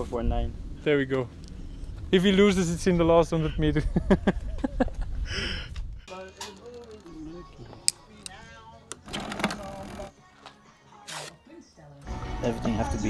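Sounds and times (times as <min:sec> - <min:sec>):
faint talk and laughter: 0:03.3 - 0:09.0
soft background music: 0:06.1 - 0:13.0.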